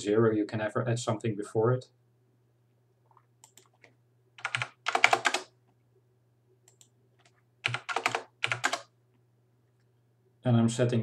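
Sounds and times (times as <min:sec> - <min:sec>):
faint low hum: 0:00.0 - 0:11.0
keyboard typing: 0:03.4 - 0:05.6, 0:06.6 - 0:08.9.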